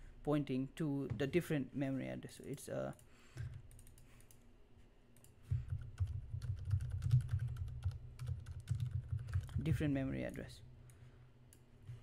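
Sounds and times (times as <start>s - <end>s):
typing on computer keyboard: 3.5s - 4.4s, 5.6s - 9.8s.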